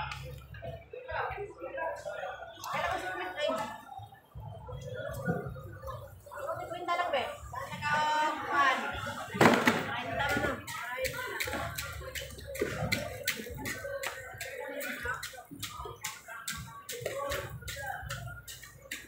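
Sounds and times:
people talking indistinctly: 0.0 - 19.0.

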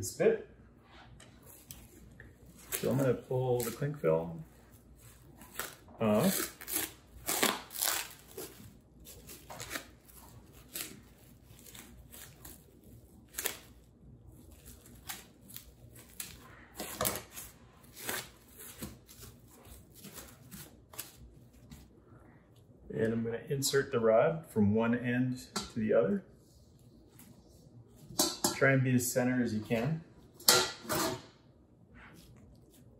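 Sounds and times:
plastic cling film crinkling: 1.5 - 21.9.

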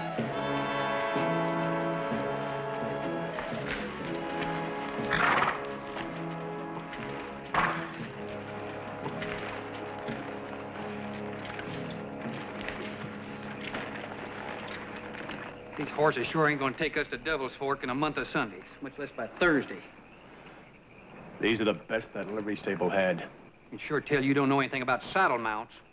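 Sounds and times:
orchestral film music: 0.0 - 20.2
horse hooves clip-clopping on dirt: 0.0 - 25.9.

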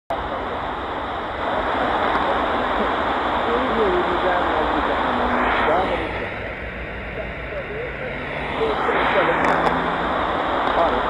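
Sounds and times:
faint radio voice: 0.1 - 11.0
radio static hiss: 0.1 - 11.0.

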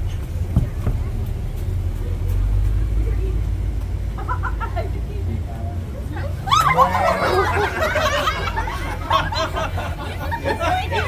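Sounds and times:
van engine rumbling past: 0.0 - 11.0.

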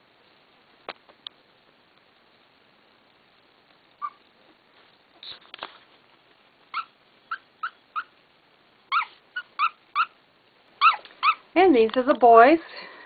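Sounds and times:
puppies whimpering: 8.9 - 10.2, 10.8 - 11.4.

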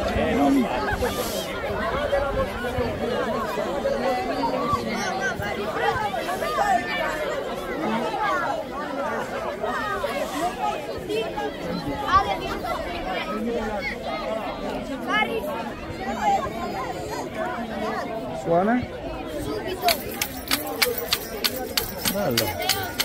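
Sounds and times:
crowd chatter: 0.0 - 23.0.

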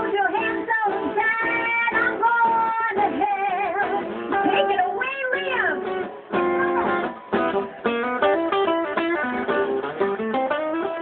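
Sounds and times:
woman singing: 0.0 - 6.1
acoustic guitar: 0.0 - 11.0.

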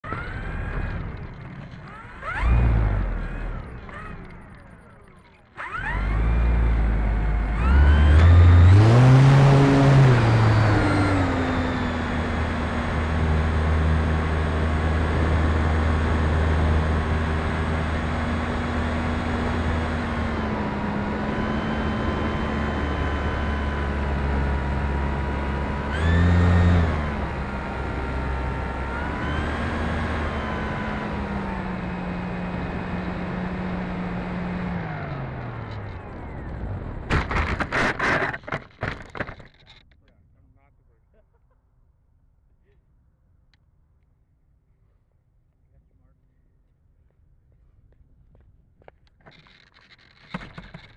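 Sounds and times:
electric motor and propeller whining: 0.0 - 38.6.

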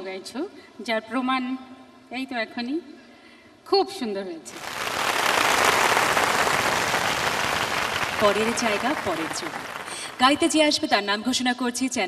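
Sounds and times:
audience applauding: 4.5 - 10.7.

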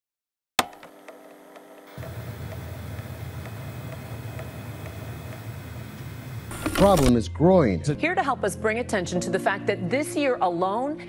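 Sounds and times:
low electrical hum: 0.9 - 7.1
faint regular ticks: 1.9 - 7.0
sharp click: 6.5 - 7.2.

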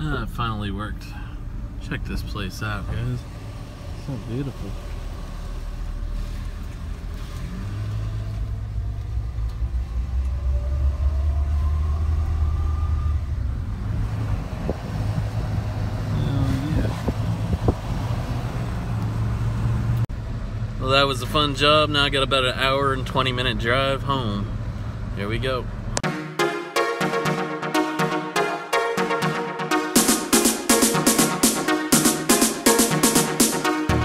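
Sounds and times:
truck engine and road rumble: 0.0 - 26.0.

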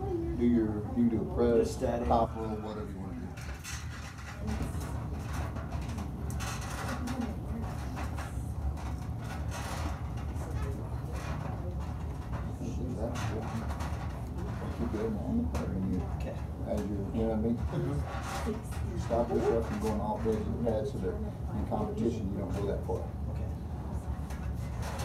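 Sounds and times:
steady low hum: 0.0 - 25.0
rustles and clicks: 3.3 - 21.1.

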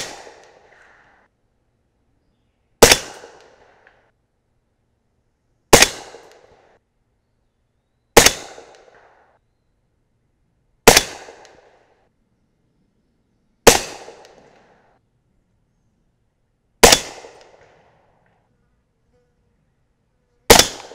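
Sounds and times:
suppressed rifle shots: 0.0 - 1.3, 2.8 - 4.1, 5.7 - 6.8, 8.2 - 9.4, 10.8 - 12.0, 13.6 - 14.9, 16.8 - 18.4, 20.5 - 20.9.

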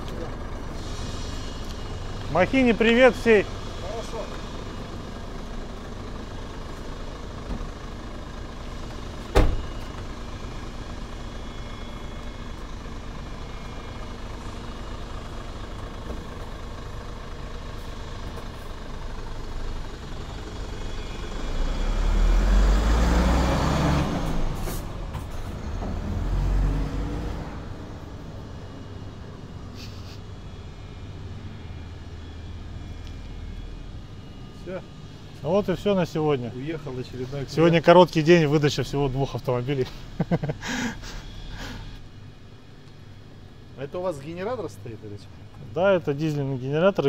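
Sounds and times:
diesel truck engine: 0.0 - 47.0
cab door slamming: 9.2 - 9.8.

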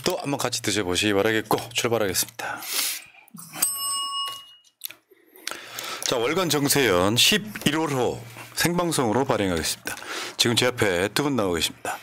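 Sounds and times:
small bell ringing: 3.4 - 4.8.

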